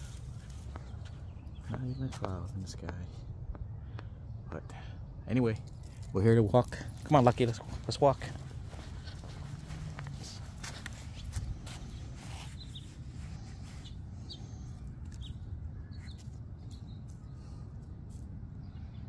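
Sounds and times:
footsteps clicking: 6.6s - 12.0s.

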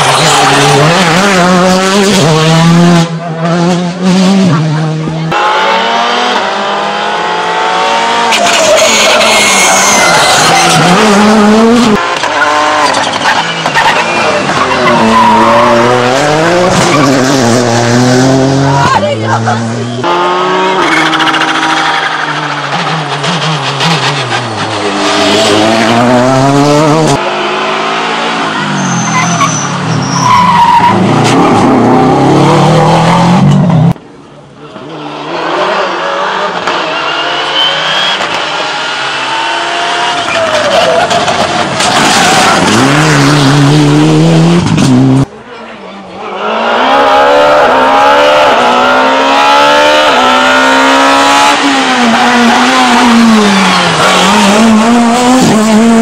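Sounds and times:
rally cars passing at speed: 0.0s - 34.0s, 34.6s - 56.0s.

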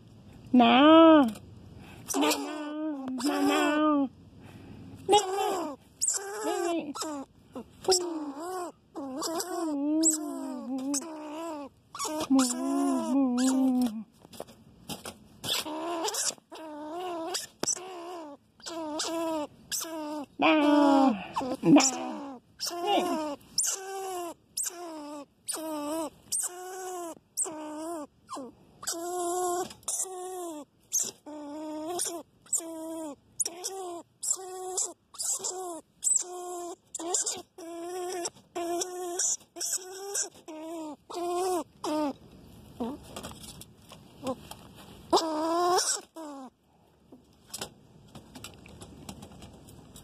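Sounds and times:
rodent squeaking calls: 2.1s - 3.8s, 5.1s - 13.8s, 15.4s - 42.2s, 45.1s - 46.5s.

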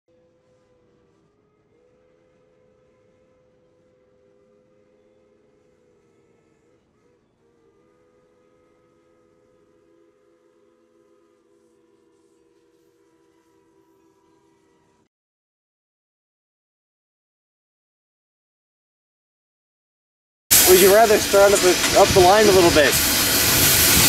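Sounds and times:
faint steam locomotive whistle: 0.1s - 15.1s, 20.5s - 24.0s.

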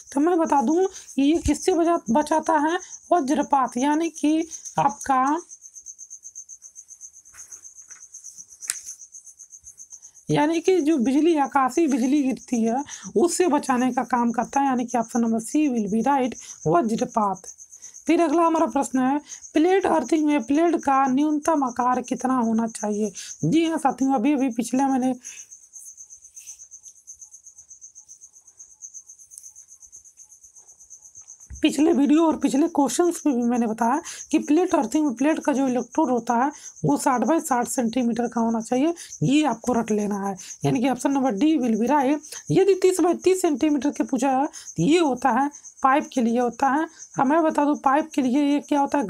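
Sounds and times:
insect chirping: 0.0s - 49.0s.

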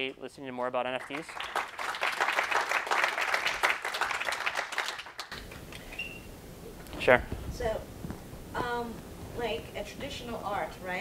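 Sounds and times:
audience applauding: 0.9s - 5.8s.

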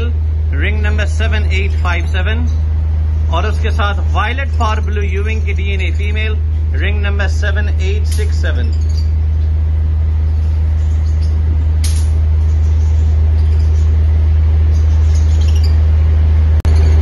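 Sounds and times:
loud low hum: 0.0s - 17.0s.

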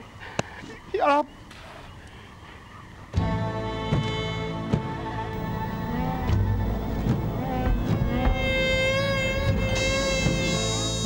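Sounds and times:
bowed spike fiddle melody: 5.4s - 10.8s.

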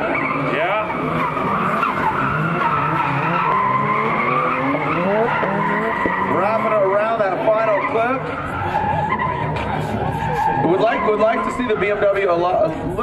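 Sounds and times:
car engines at high revs: 0.0s - 13.0s
tyres squealing and skidding: 0.0s - 13.0s.

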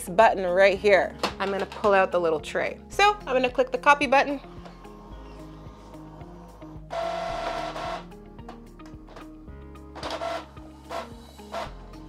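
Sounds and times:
background music: 0.0s - 12.0s
printer mechanical whir: 4.6s - 8.0s.

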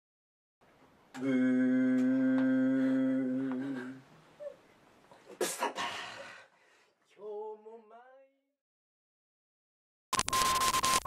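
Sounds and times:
man humming low note: 1.1s - 4.1s.

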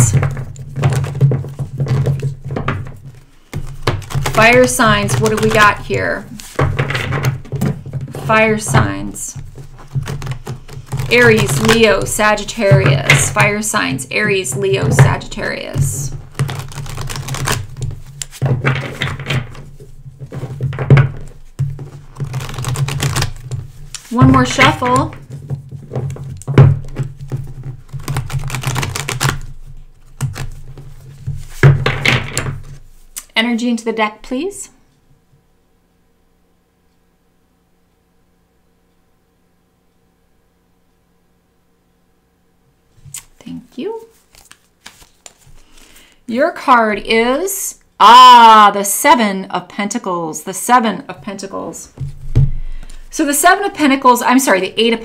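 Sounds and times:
cards shuffling: 0.0s - 33.2s, 43.0s - 43.4s, 44.0s - 46.2s.

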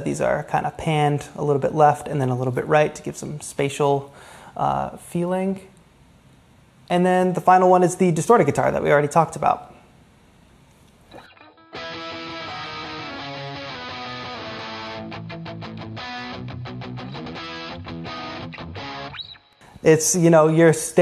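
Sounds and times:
distorted electric guitar chords: 11.1s - 19.6s.

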